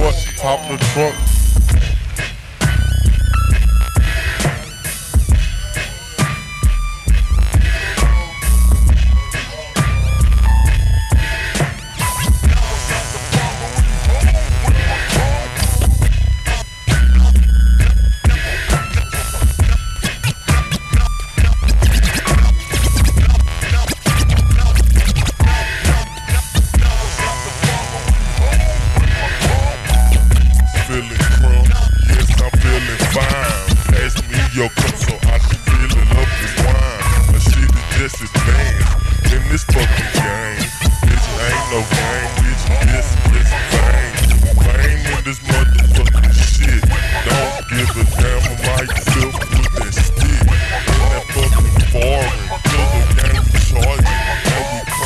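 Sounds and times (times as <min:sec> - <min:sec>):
hip-hop beat with deep bass: 0:00.0 - 0:55.0
turntable scratching: 0:00.0 - 0:55.0.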